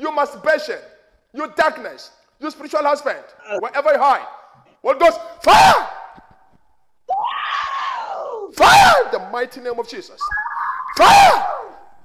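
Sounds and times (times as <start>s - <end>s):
man shouting: 5.1s - 6.2s, 8.1s - 9.4s, 10.9s - 11.8s
woman screaming: 7.1s - 8.6s.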